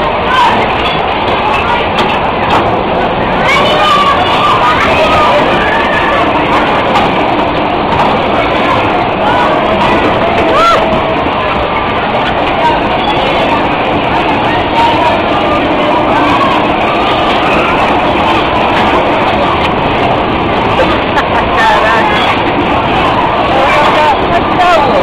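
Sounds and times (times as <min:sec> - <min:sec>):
bumper car ride din: 0:00.0 - 0:25.0
voices of riders and onlookers: 0:00.0 - 0:25.0.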